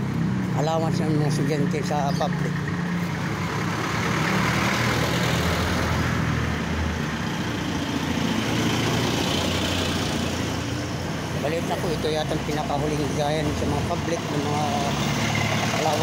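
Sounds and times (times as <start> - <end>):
street noise: 0.0 - 16.0.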